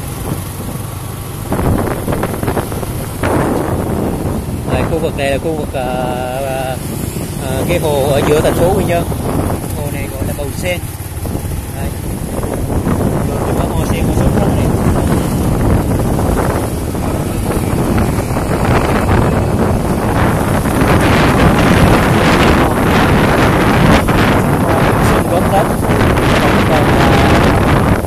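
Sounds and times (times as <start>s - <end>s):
motorbikes passing: 0.0s - 28.0s
street traffic: 0.0s - 28.0s
wind buffeting microphone: 0.0s - 28.0s.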